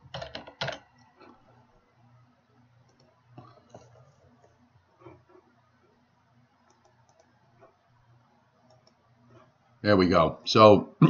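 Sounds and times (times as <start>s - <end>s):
low room hum: 0.0s - 11.0s
computer mouse clicks: 2.8s - 5.3s, 6.6s - 7.8s, 8.6s - 9.4s
man talking: 9.8s - 11.0s.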